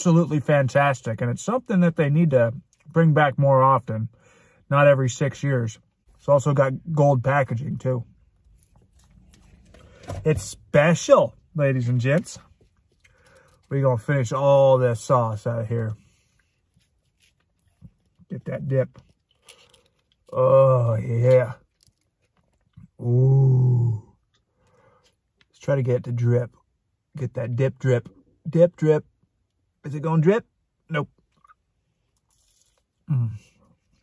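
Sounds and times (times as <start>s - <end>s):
chewing food: 12.4s - 13.7s, 19.0s - 20.4s, 21.4s - 23.0s.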